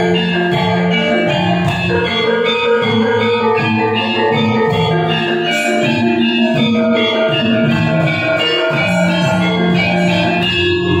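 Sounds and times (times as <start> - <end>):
gamelan ensemble playing: 0.0 - 11.0.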